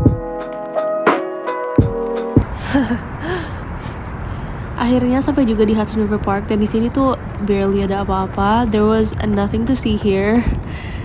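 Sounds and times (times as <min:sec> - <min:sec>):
low outdoor rumble: 0:02.4 - 0:11.0
woman laughing breathily: 0:02.5 - 0:04.0.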